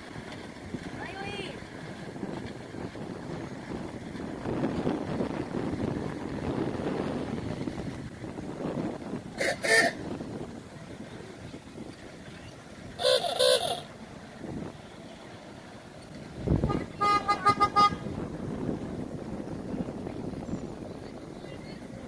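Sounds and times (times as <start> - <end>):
low outdoor rumble: 0.0 - 22.0
golf cart horn beeps: 9.4 - 10.0, 13.0 - 13.9, 16.6 - 18.1.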